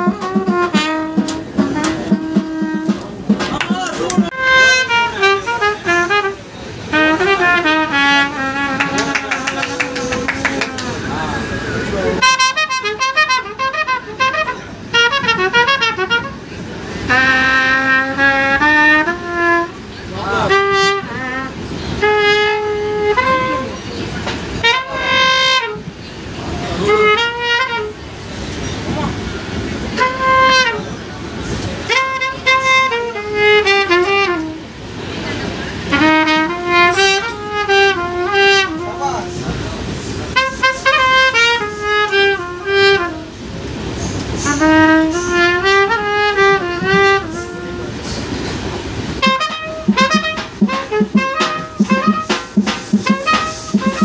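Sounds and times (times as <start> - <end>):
trumpet playing slow melody: 0.0 - 3.2, 4.2 - 10.6, 12.2 - 26.0, 26.6 - 28.3, 29.2 - 30.9, 31.6 - 54.0
train rumble: 0.0 - 54.0.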